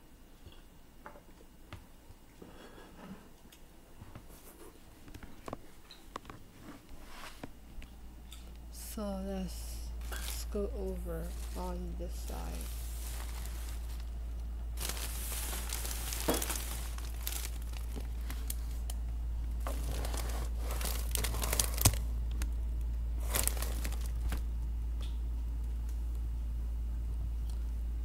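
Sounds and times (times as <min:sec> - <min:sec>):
steady low hum: 0:00.0 - 0:28.0
material crinkling and rustling: 0:10.0 - 0:22.6, 0:23.2 - 0:24.6.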